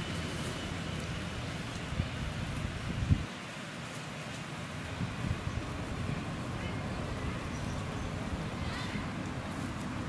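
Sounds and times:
wind buffeting microphone: 0:01.7 - 0:03.4, 0:04.8 - 0:10.0.

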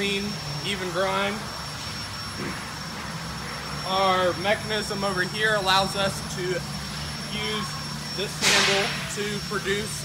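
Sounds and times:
high-pitched whine: 0:00.0 - 0:10.0
machinery hum and hiss: 0:00.0 - 0:10.0.

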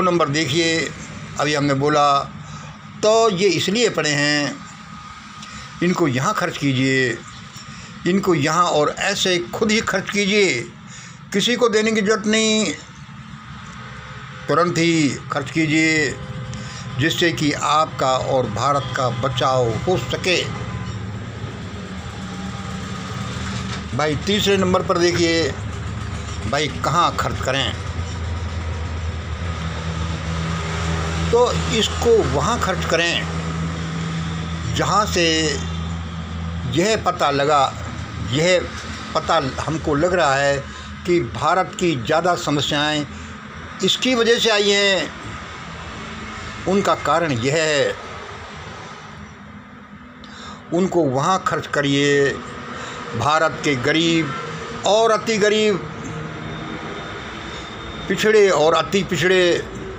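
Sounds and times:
steady low hum: 0:00.0 - 0:46.8
faint high whine: 0:50.3 - 0:59.9.

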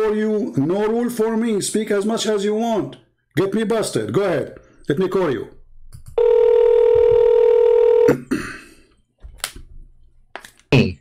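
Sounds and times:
phone ringback tone: 0:06.2 - 0:08.1.

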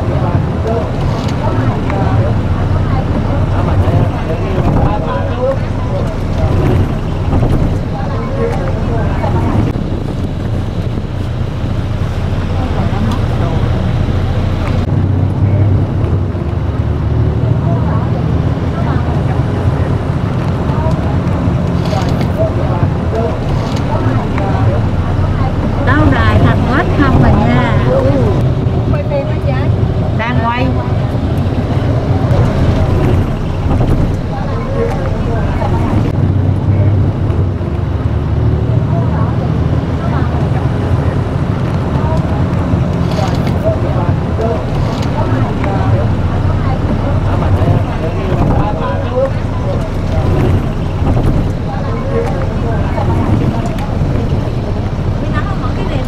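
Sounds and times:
people talking: 0:00.0 - 0:16.6, 0:17.2 - 0:37.8, 0:38.4 - 0:56.0
vehicle engine and road noise: 0:00.0 - 0:56.0.

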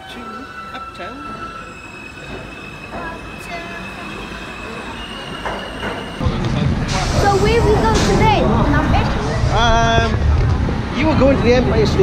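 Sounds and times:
subway train wheels squealing: 0:00.0 - 0:09.6
street noise: 0:00.0 - 0:12.0
train rumble: 0:00.0 - 0:12.0.

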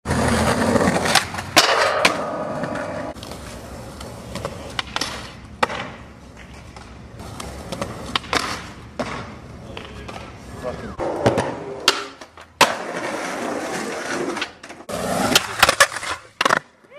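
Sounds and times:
skateboard wheels rolling on concrete: 0:00.0 - 0:16.9
skateboard popping and landing: 0:00.1 - 0:10.4, 0:11.0 - 0:16.9.

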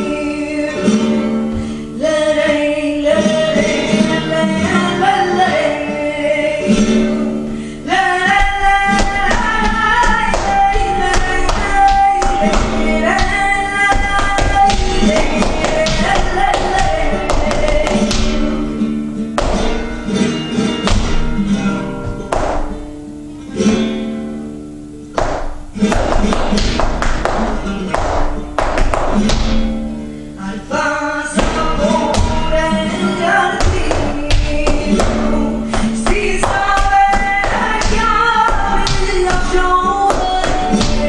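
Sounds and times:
flamenco guitar music: 0:00.0 - 0:41.0
sharp taps: 0:25.2 - 0:29.7.

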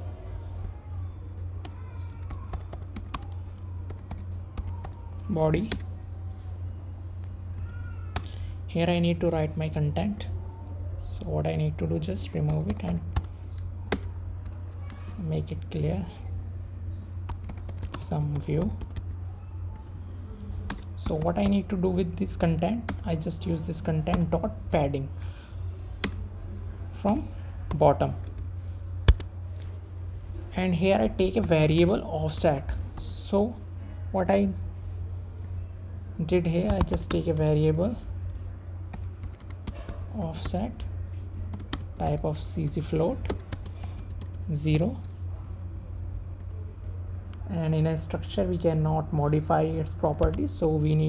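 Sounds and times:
steady low hum: 0:00.0 - 0:51.0
computer keyboard typing: 0:01.6 - 0:05.0, 0:12.4 - 0:15.2, 0:17.3 - 0:19.2, 0:20.4 - 0:21.7, 0:29.1 - 0:29.3, 0:36.6 - 0:37.8, 0:38.9 - 0:40.6, 0:41.4 - 0:42.3, 0:43.2 - 0:44.5
computer keyboard keystrokes: 0:38.9 - 0:40.5, 0:41.5 - 0:42.2.

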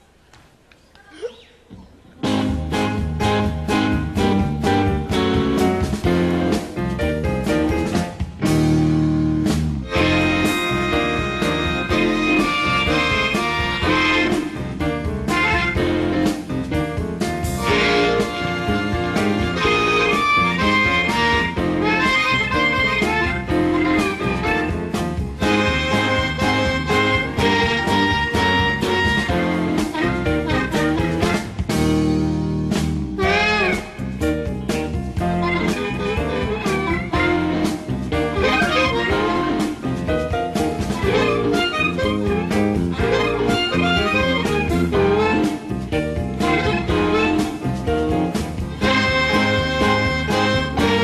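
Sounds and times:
drum kit: 0:02.2 - 0:51.0
electric guitar: 0:02.2 - 0:51.0
harmonica bending notes: 0:09.8 - 0:16.5, 0:17.6 - 0:31.8, 0:33.1 - 0:51.0.

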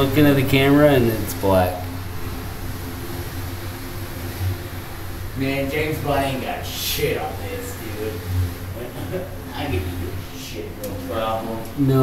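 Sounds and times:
faint hiss: 0:00.0 - 0:12.0
low mechanical hum: 0:00.0 - 0:12.0.

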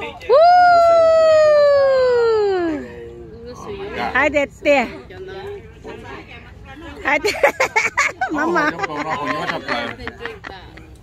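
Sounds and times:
person cheering woooo: 0:00.3 - 0:02.8.

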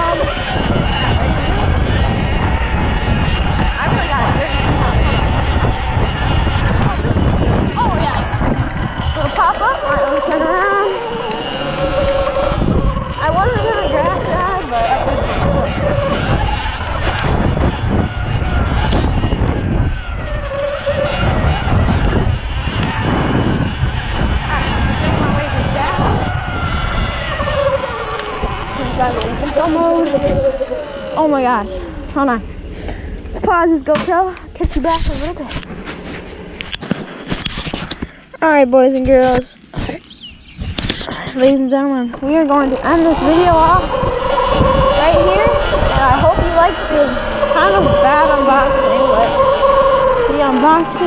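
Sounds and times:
electric motor whine: 0:00.0 - 0:38.2, 0:40.1 - 0:51.0
wind buffeting microphone: 0:00.0 - 0:51.0.

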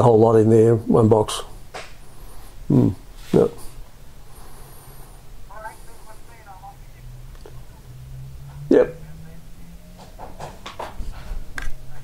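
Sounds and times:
low steady hum: 0:00.0 - 0:10.2.

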